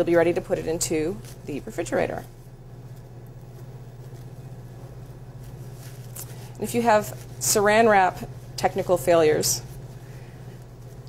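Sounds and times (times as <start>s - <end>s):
low electrical hum: 0.0s - 11.0s
plastic cling wrap rustling: 0.0s - 11.0s.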